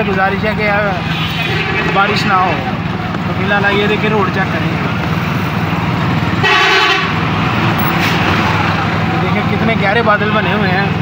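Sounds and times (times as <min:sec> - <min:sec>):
auto-rickshaw engine running: 0:00.0 - 0:11.0
vehicle horn toot: 0:01.0 - 0:02.3, 0:06.4 - 0:07.2.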